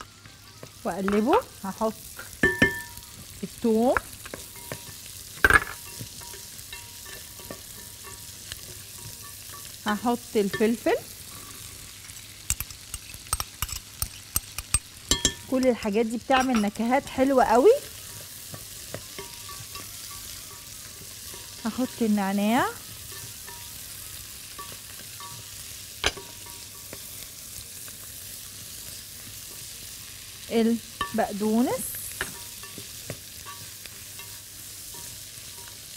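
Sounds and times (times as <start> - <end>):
food sizzling in butter: 0.0 - 35.9
clicks and knocks against pot: 12.4 - 15.6.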